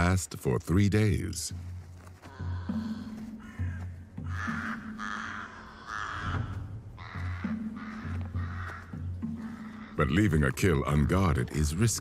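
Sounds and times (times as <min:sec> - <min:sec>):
background music: 0:00.0 - 0:12.0
crow cawing: 0:02.0 - 0:11.4.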